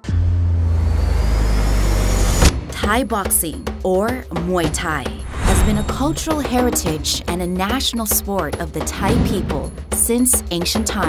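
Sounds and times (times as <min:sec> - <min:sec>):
deep rumble drone: 0:00.0 - 0:02.8
faint rising whine: 0:00.5 - 0:02.5.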